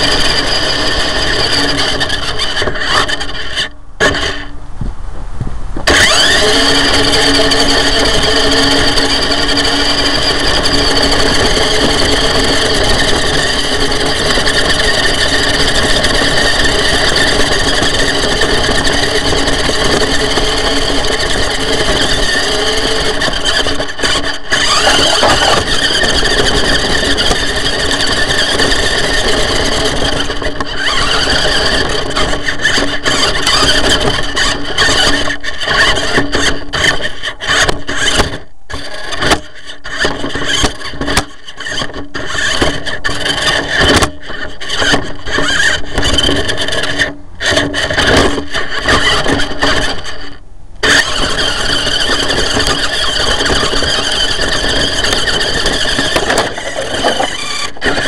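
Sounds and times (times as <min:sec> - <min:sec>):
electric motor and gearbox whining: 0:00.0 - 0:04.6, 0:05.8 - 0:58.0.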